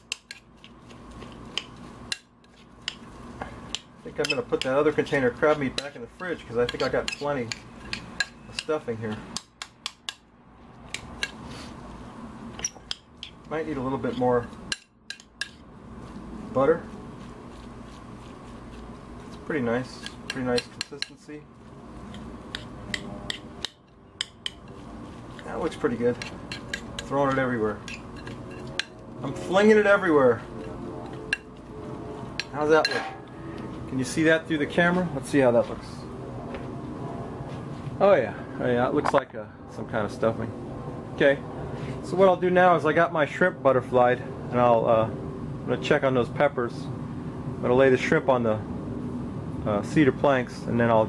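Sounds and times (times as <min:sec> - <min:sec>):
spoon scraping stuffing in bowl: 0:00.0 - 0:09.2, 0:12.6 - 0:33.0.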